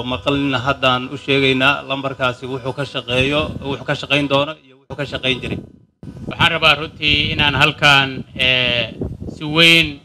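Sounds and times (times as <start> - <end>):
man speaking into microphones: 0.0 - 10.0.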